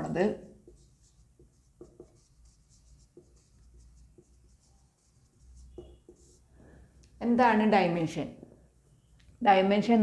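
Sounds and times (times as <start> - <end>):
marker writing on whiteboard: 0.0 - 6.6
marker tip tapping board: 1.4 - 2.3.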